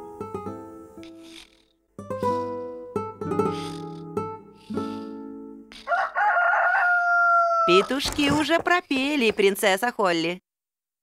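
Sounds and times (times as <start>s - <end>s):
rooster crowing: 5.8s - 8.0s.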